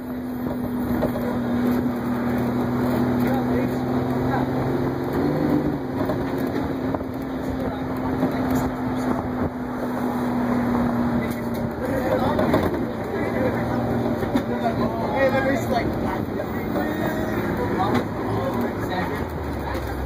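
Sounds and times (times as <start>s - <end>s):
bus engine hum: 0.0s - 20.0s
road and wind noise: 0.0s - 20.0s.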